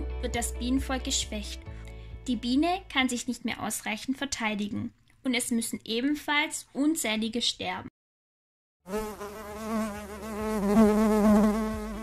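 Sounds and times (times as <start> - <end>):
bee buzzing: 8.9 - 12.0.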